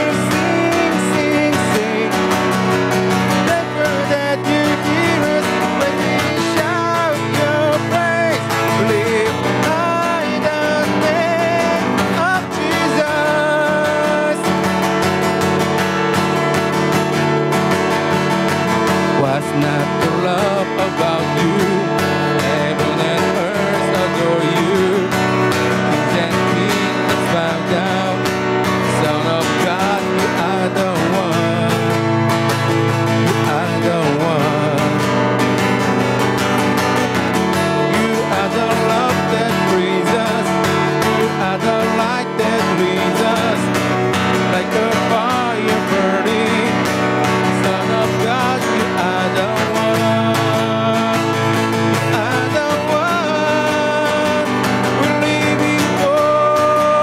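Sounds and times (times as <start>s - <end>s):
man singing: 0.0s - 36.6s, 37.4s - 57.0s
strummed acoustic guitar: 0.0s - 57.0s.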